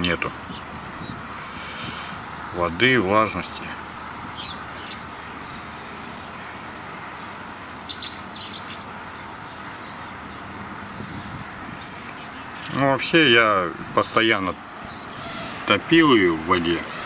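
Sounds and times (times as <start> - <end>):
faint outdoor background: 0.0 - 17.0
small bird chirping: 3.8 - 6.3, 7.1 - 12.7.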